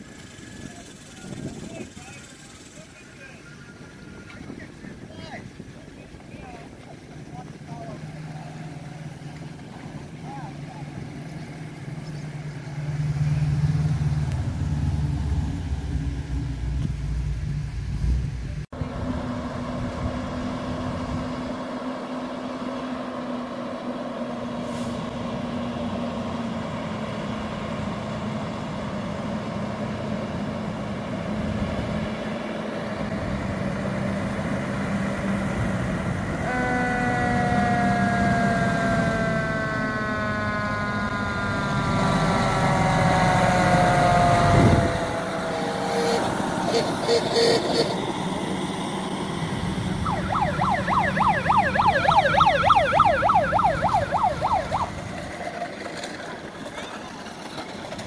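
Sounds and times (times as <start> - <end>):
fire engine running: 0.0 - 58.0
siren winding down: 35.3 - 55.4.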